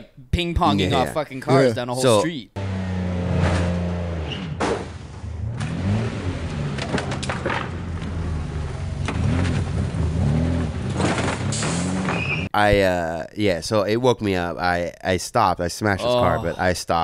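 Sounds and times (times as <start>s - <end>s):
car engine revving: 2.5s - 12.4s
sharp knocks and scrapes: 6.7s - 8.2s, 10.6s - 12.5s.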